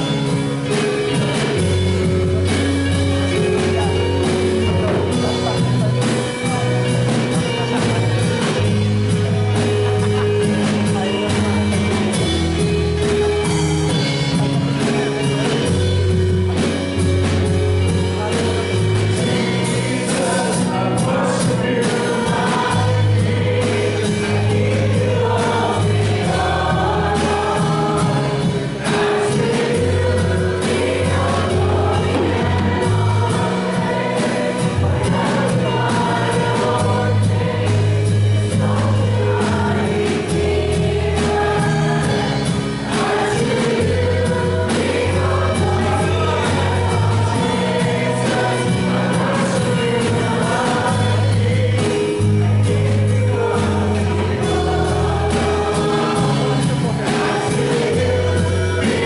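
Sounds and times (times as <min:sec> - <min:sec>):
bass guitar notes: 0:00.0 - 0:59.0
group of singers: 0:00.0 - 0:59.0
worship band playing: 0:00.0 - 0:59.0.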